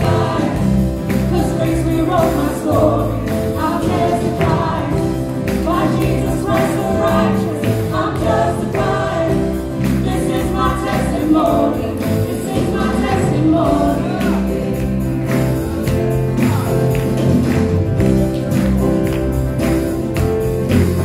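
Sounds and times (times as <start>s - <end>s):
woman singing gospel: 0.0s - 14.9s
backing voices singing: 0.0s - 17.7s
acoustic guitar: 0.0s - 21.0s.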